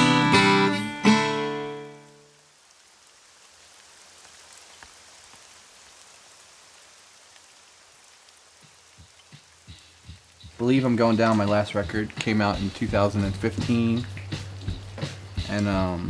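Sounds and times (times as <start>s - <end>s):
acoustic guitar chord ringing: 0.0s - 2.3s
outdoor ambience hiss: 0.0s - 16.0s.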